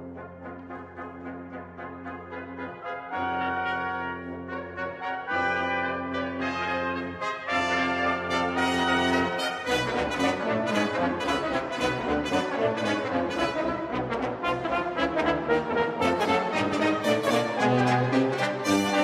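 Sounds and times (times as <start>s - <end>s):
brass ensemble playing: 0.0s - 19.0s.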